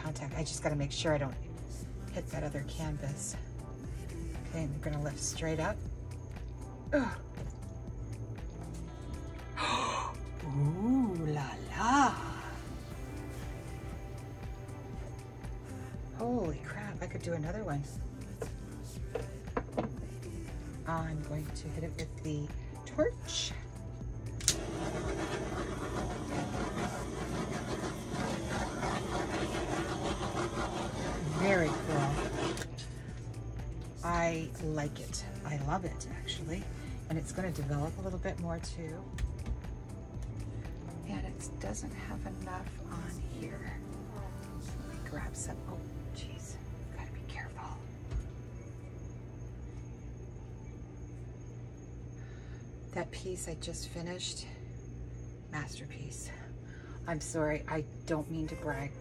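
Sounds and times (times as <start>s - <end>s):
low background hum: 0.0s - 59.0s
torch igniter click: 24.4s - 24.8s
torch hissing roar: 24.4s - 32.9s.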